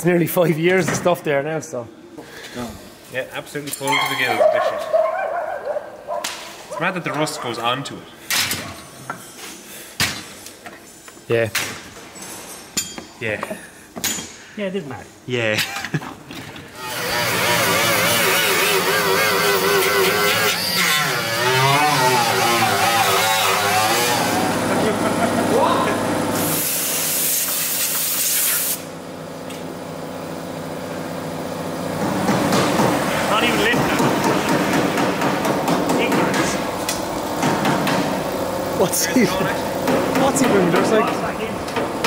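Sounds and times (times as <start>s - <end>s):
angle grinder on steel: 16.8s - 27.7s
burst of hiss: 26.4s - 28.9s.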